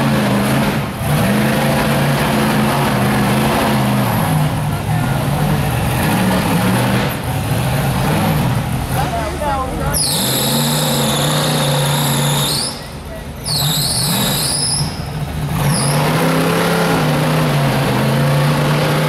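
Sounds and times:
buggy engine revving hard: 0.0 - 9.3, 9.9 - 19.0
high shrill whistle-like tone: 9.9 - 15.1.

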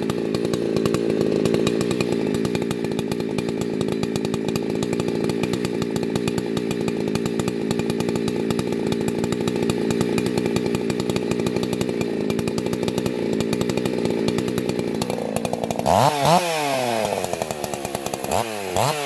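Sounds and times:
chainsaw idling: 0.0 - 19.0.

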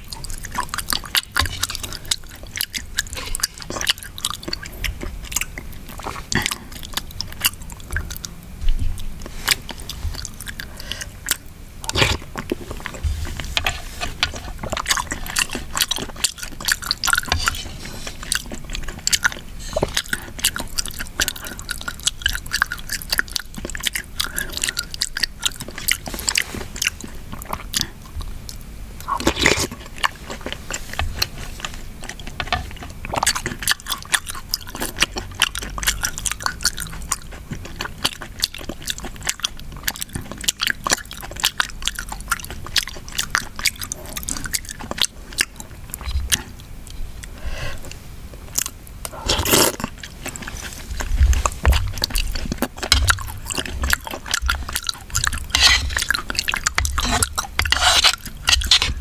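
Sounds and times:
wet chewing and lip smacks: 0.0 - 59.0.

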